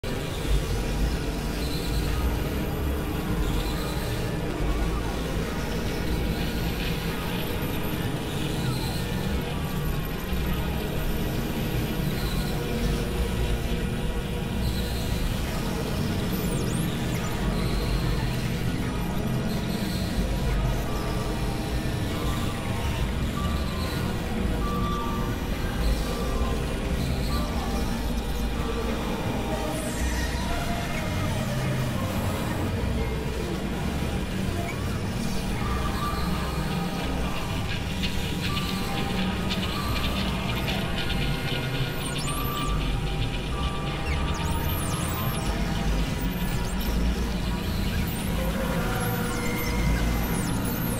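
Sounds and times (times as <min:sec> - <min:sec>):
synthesizer drone: 0:25.2 - 0:50.9.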